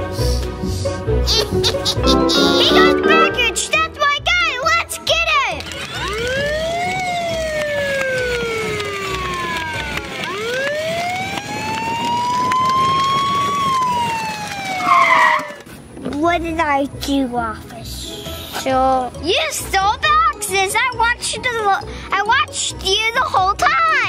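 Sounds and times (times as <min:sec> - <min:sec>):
siren wailing: 0:05.9 - 0:15.6.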